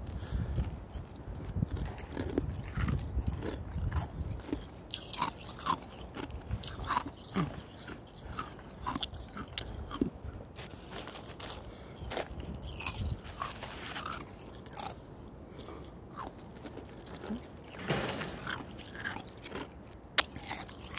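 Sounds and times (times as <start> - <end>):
ice being chewed: 0.1 - 17.8, 18.4 - 20.9.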